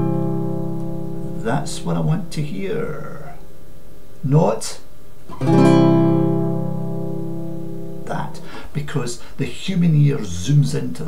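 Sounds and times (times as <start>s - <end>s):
classical guitar chord strummed: 0.0s - 1.5s, 5.3s - 8.1s.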